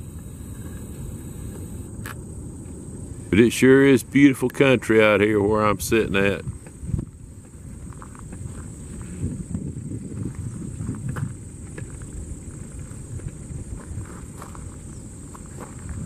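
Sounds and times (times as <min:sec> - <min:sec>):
low rumble on microphone: 0:00.0 - 0:16.0.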